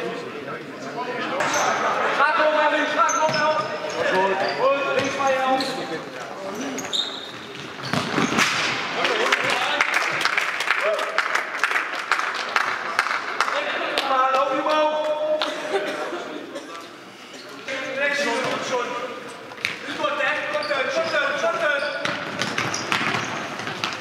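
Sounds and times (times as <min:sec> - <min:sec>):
shoes squeaking on wooden floor: 0:03.0 - 0:08.5, 0:17.2 - 0:24.0
ball touches and bounces: 0:07.6 - 0:08.8, 0:22.0 - 0:24.0.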